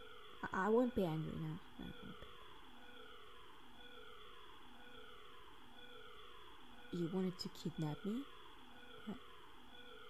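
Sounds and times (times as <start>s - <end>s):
faint siren: 0.0s - 10.0s.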